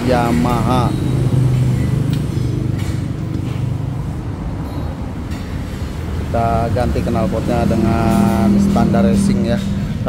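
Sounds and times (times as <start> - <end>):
low mechanical drone: 0.0 - 10.0.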